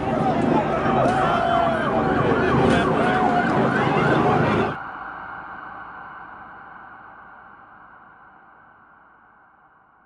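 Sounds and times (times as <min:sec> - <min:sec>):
emergency vehicle sirens: 0:00.0 - 0:08.2
noisy street: 0:00.0 - 0:10.0.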